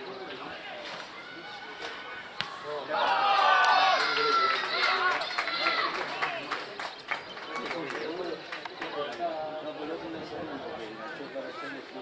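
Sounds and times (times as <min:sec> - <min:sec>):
scattered chatter: 0:00.0 - 0:12.0
people shouting and cheering: 0:00.4 - 0:08.3.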